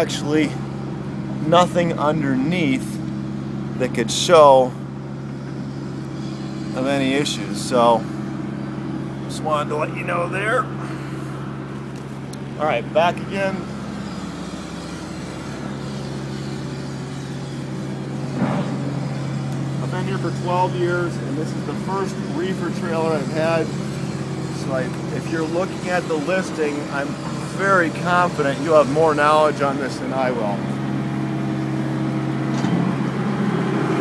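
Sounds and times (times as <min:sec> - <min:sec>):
diesel engine droning: 0:00.0 - 0:34.0.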